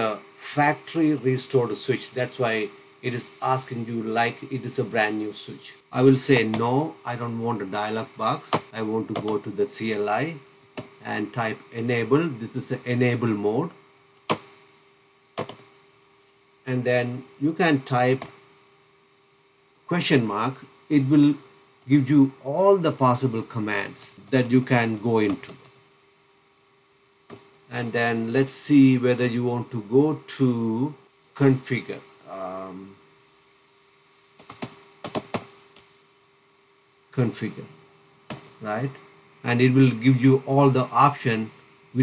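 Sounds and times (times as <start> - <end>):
keyboard keystroke clicks: 15.4 - 15.6, 34.4 - 35.5.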